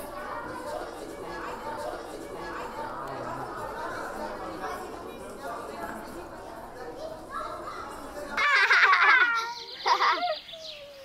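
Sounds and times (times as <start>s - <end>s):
low chatter: 0.0s - 11.0s
children shouting and shrieking: 7.0s - 11.0s.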